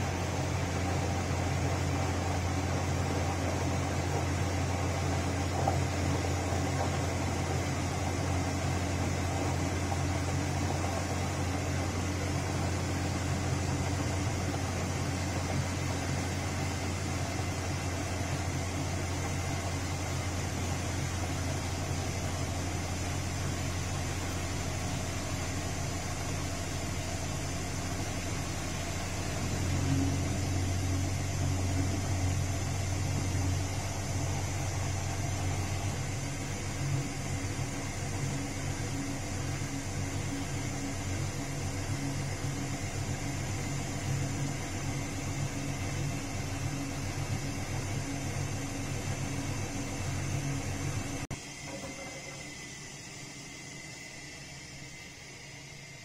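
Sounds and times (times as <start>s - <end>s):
washing machine motor humming: 0.0s - 56.0s.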